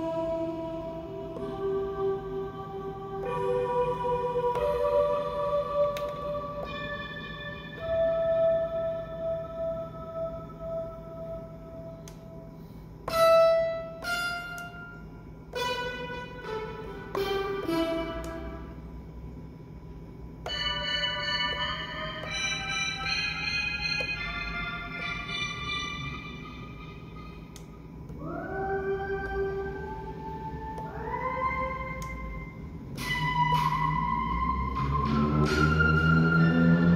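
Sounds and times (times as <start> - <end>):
synth notes and chords: 0.0 - 18.9, 20.4 - 36.9.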